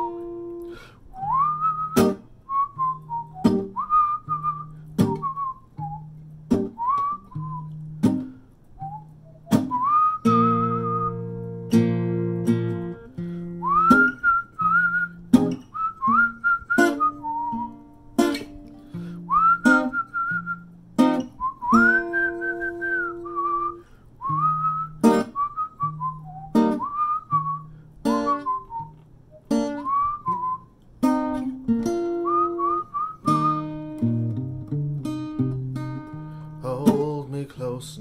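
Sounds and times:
person whistling a melody: 0.0s - 34.5s, 36.4s - 37.8s
acoustic guitar strumming: 0.0s - 38.0s.

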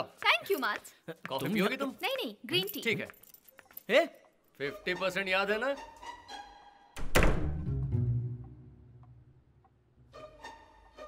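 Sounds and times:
background music: 3.7s - 11.0s.

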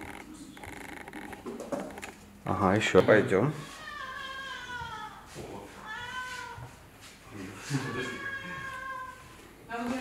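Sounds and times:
cat meowing: 5.8s - 6.7s, 7.8s - 9.2s.

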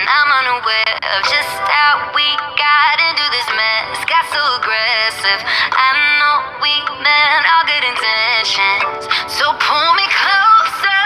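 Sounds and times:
high-pitched singing: 0.0s - 11.0s
pop backing music: 0.0s - 11.0s.

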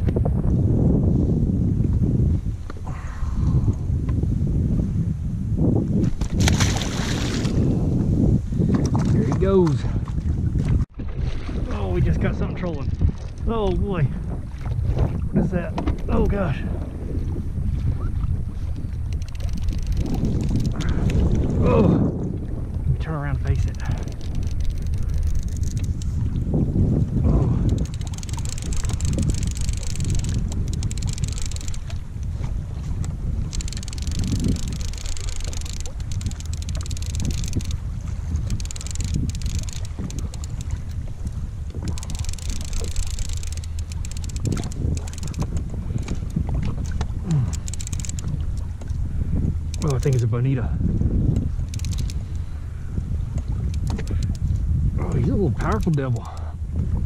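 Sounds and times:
wind buffeting microphone: 0.0s - 57.0s
water washing against hull: 5.8s - 57.0s.

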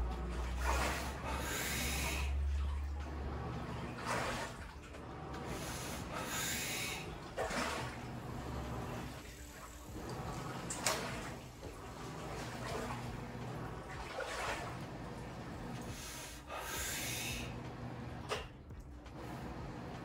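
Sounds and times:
laundry machines humming: 0.0s - 20.0s.

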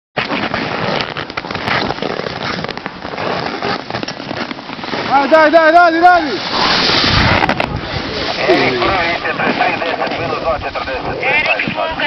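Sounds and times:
skis scraping on icy snow: 0.2s - 12.0s.

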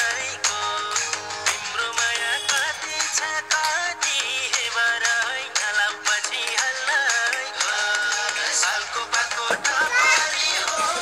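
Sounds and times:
song with steady beat: 0.0s - 11.0s.

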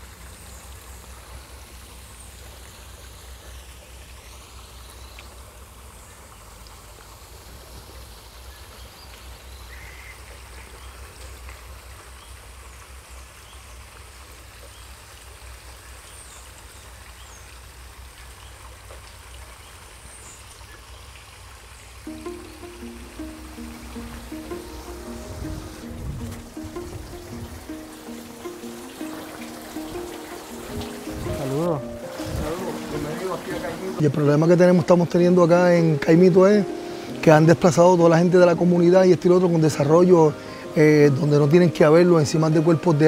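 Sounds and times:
river water flowing and trickling: 0.0s - 43.0s.

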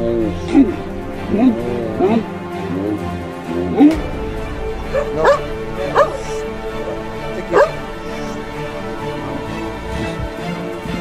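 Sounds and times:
background music: 0.0s - 11.0s
dog barking: 4.9s - 6.4s, 7.4s - 8.4s.

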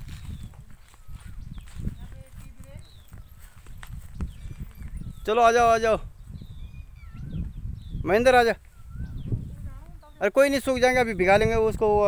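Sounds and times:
footsteps through dry stubble: 0.0s - 5.3s
wind on microphone: 0.0s - 12.0s.

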